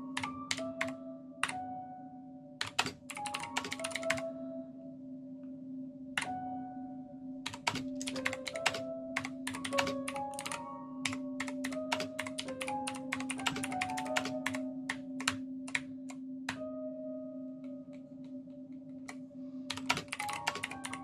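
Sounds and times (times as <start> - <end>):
keyboard typing: 0.2 - 1.6, 2.6 - 4.3, 7.4 - 16.7, 17.6 - 21.0.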